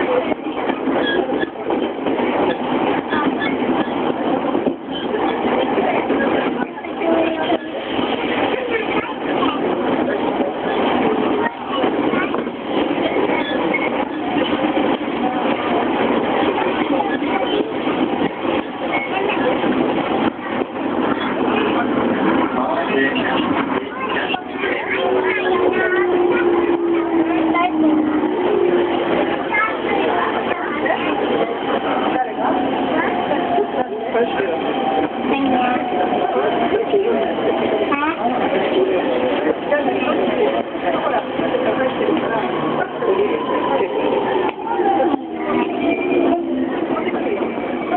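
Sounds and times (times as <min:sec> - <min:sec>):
indistinct voices: 0:00.0 - 0:47.9
people chattering: 0:00.0 - 0:47.9
steady train whine: 0:00.0 - 0:47.9
train running noise: 0:00.0 - 0:47.9.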